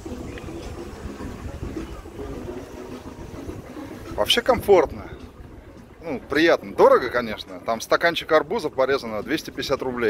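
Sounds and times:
wind buffeting microphone: 0.0s - 7.4s.

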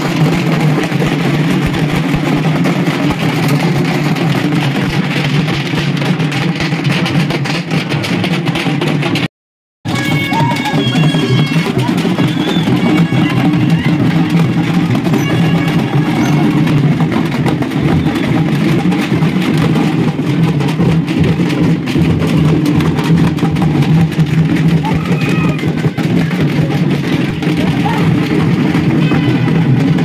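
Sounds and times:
drums beaten rapidly: 0.0s - 30.0s
crowd voices: 9.9s - 18.7s, 23.5s - 30.0s.

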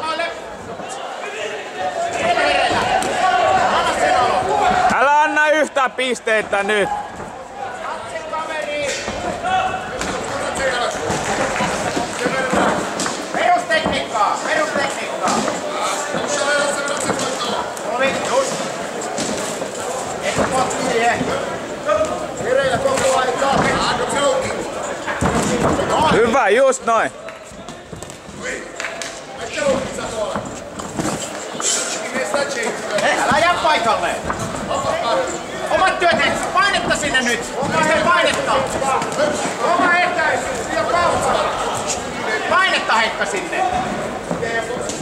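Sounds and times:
shouting and chatter: 0.0s - 45.0s.

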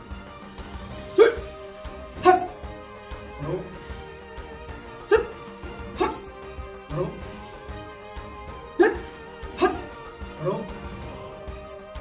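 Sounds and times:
background music: 0.0s - 12.0s
person shouting commands: 1.1s - 1.5s, 2.2s - 2.6s, 5.1s - 6.3s, 8.8s - 10.7s.

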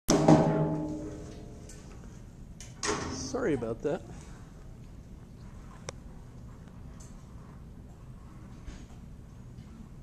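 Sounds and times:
sharp knocks on resonant object: 0.1s - 1.2s.

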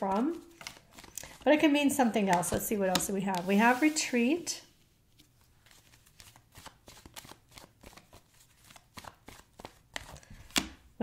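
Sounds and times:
cards being shuffled: 0.0s - 1.4s, 5.1s - 10.8s.

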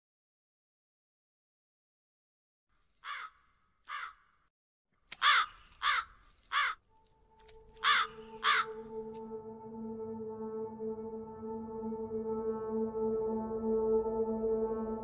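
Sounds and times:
crows cawing: 3.0s - 4.3s, 5.2s - 6.9s, 7.6s - 9.0s
ambient music drone: 6.8s - 15.0s.

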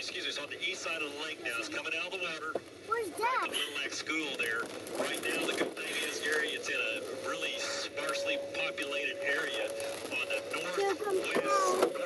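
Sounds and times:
voices over car radio: 0.0s - 12.0s
steady tone: 5.9s - 11.9s.

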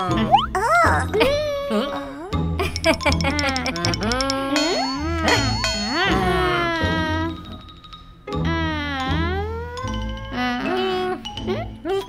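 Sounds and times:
cartoon voices whining: 0.0s - 2.4s, 3.4s - 7.5s.

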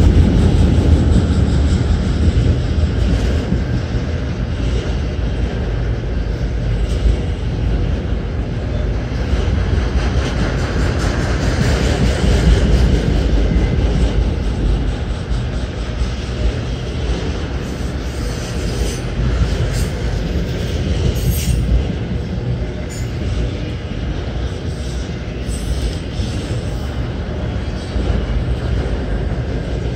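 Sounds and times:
train wheels rumbling on rails: 0.0s - 29.9s.

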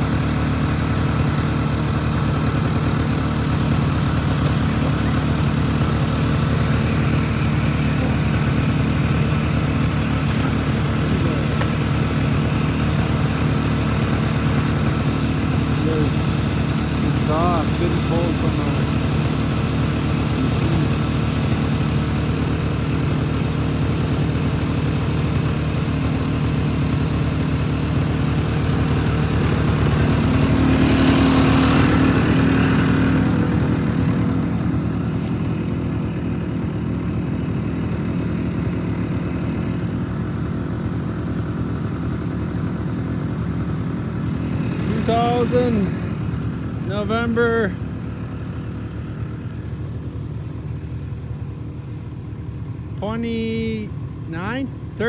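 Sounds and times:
snowmobile engine idling: 0.0s - 55.0s.

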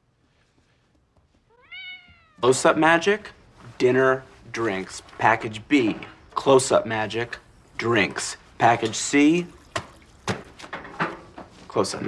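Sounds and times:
cat meowing: 1.5s - 2.4s.

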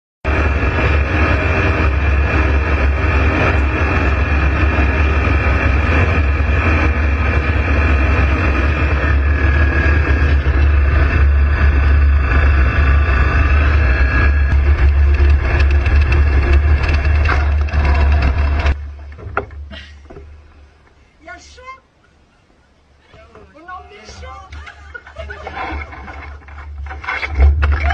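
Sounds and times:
aircraft engine and propeller drone: 0.3s - 19.3s.

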